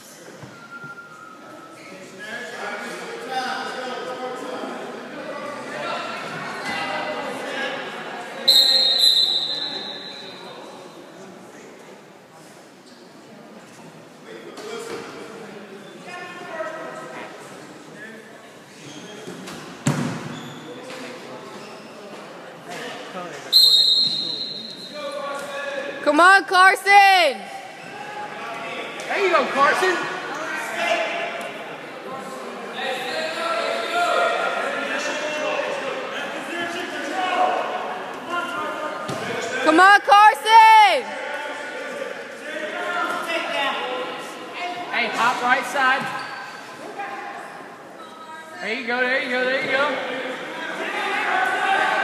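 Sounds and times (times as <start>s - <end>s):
voices echoing in gym: 0.0s - 52.0s
referee's whistle blasts: 8.4s - 10.4s, 23.5s - 25.0s.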